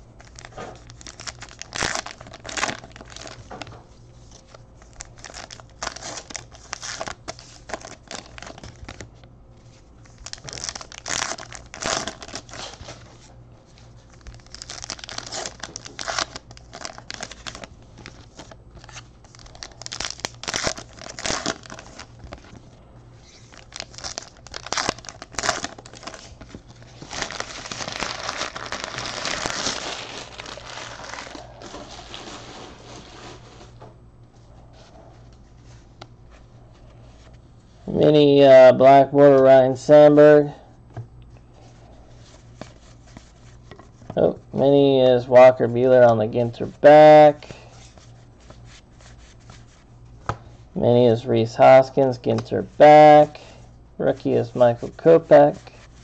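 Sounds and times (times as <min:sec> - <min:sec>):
plastic wrappers tearing and crinkling: 0:00.2 - 0:03.7, 0:04.4 - 0:09.1, 0:10.0 - 0:13.2, 0:14.1 - 0:22.6, 0:23.2 - 0:33.7.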